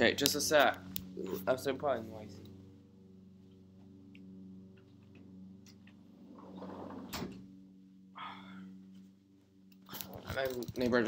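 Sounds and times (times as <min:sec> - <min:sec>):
steady low hum: 0:00.0 - 0:11.0
breathy rush: 0:08.2 - 0:08.8.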